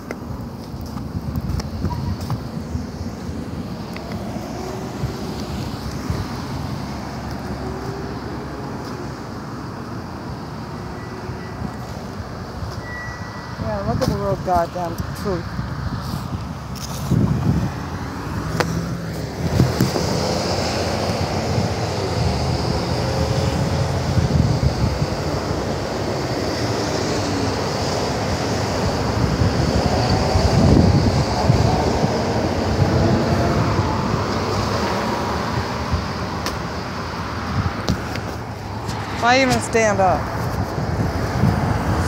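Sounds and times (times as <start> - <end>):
cars passing on road: 0.0 - 42.0.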